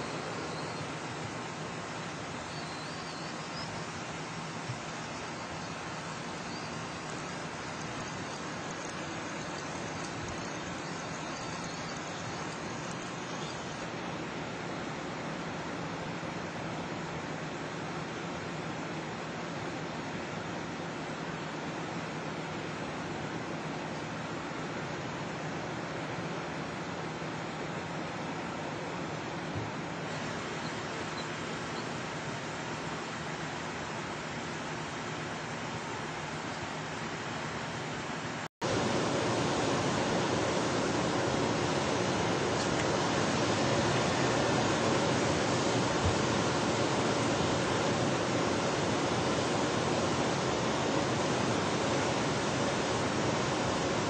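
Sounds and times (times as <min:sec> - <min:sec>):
steady rushing noise: 0:28.1 - 0:54.0.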